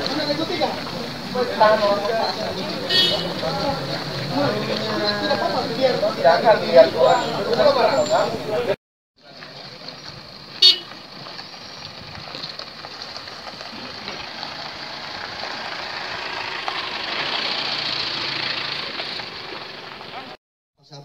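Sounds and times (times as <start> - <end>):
crowd hubbub: 0.0 - 16.4, 17.8 - 20.4
slow-moving car: 0.0 - 20.4
vehicle horn toot: 2.8 - 3.6, 10.6 - 11.0.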